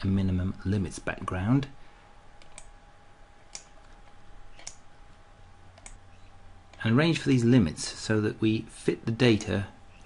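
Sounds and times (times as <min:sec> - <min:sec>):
computer mouse clicking: 0:02.4 - 0:02.7, 0:03.5 - 0:04.8, 0:05.7 - 0:06.8.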